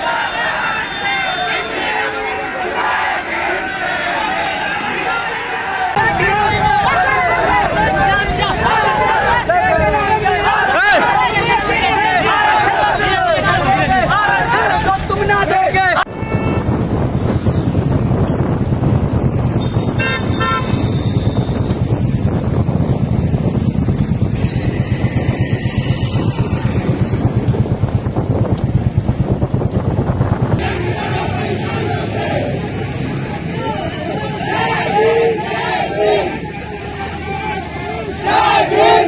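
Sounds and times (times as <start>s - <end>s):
crowd voices: 0.0s - 17.3s, 21.8s - 29.3s, 30.6s - 39.0s
street traffic noise: 0.0s - 39.0s
wind: 0.0s - 39.0s
vehicle horn toot: 16.1s - 16.8s, 19.6s - 21.6s.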